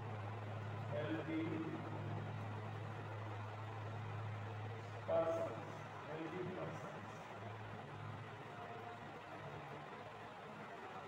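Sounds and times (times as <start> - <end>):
steady low hum: 0.0 - 8.4.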